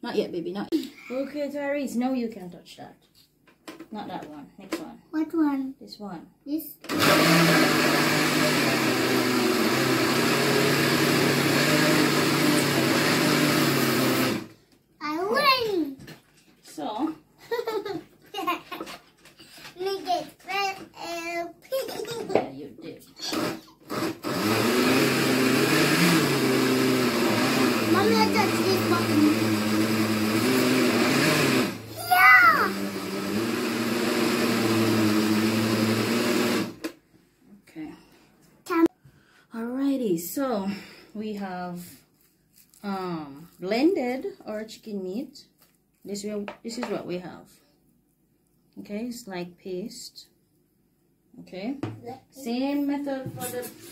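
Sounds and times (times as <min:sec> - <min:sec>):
blender grinding meat: 0:06.9 - 0:14.6, 0:23.2 - 0:36.9.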